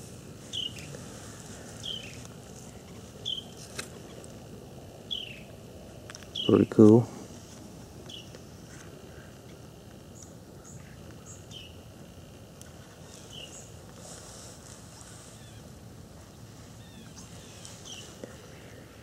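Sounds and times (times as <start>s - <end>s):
low background noise: 0.0s - 19.0s
bird giving high chirps: 5.1s - 5.5s, 6.3s - 6.7s.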